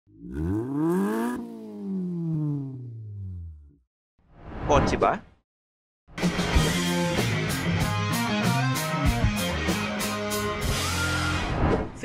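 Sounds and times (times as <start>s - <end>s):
car engine revving: 0.1s - 3.8s.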